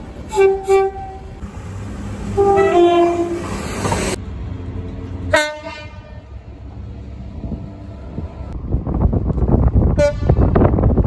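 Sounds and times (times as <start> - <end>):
passing train noise: 0.0 - 11.0
train engine rumble: 0.0 - 11.0
short train horn toot: 0.3 - 1.3, 2.4 - 3.5, 5.3 - 6.2
two-note train horn: 0.3 - 1.3, 2.4 - 3.5, 5.3 - 6.2.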